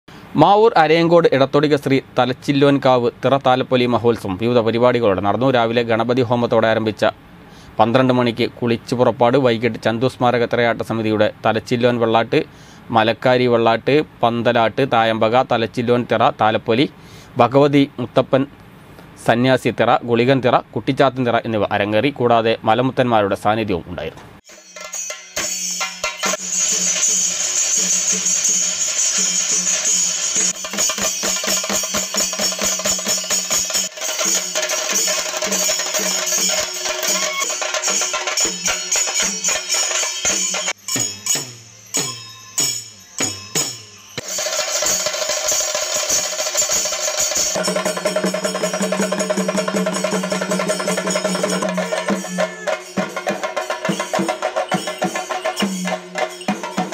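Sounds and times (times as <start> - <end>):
bright metallic ringing: 24.5 - 56.9
drums beaten with sticks: 24.5 - 56.9
low held tone: 36.0 - 44.4.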